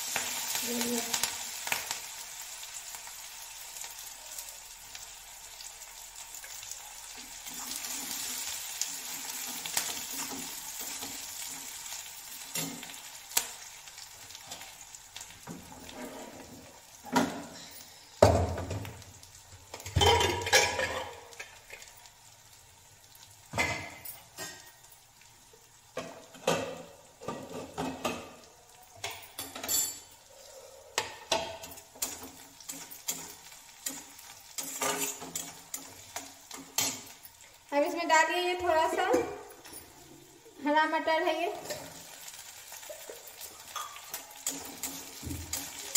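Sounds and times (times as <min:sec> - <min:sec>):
spices sizzling in oil: 0:00.0 - 0:45.9
metal spatula scraping a pan: 0:15.6 - 0:17.8, 0:31.0 - 0:37.2
heavy pots clunking: 0:19.7 - 0:21.3.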